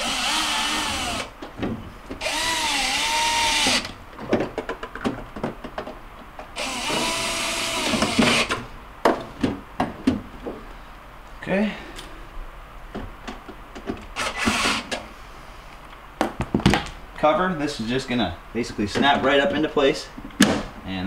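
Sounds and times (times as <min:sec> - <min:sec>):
cordless drill driving screws: 0:00.0 - 0:01.3, 0:02.2 - 0:04.0, 0:06.6 - 0:08.6, 0:14.2 - 0:15.0
handling clicks and knocks: 0:04.2 - 0:06.6.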